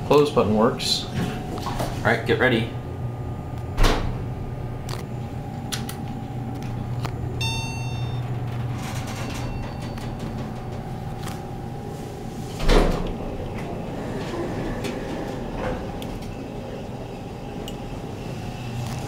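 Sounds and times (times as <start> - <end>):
elevator hum: 0.0 - 19.0
faint whine: 0.0 - 19.0
short chime: 7.4 - 8.2.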